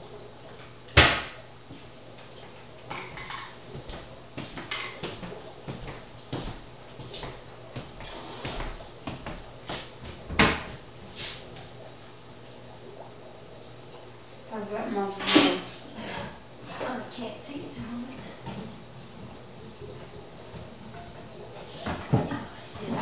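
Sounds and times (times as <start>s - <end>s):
dishes clicking and tapping: 2.9s - 5.9s.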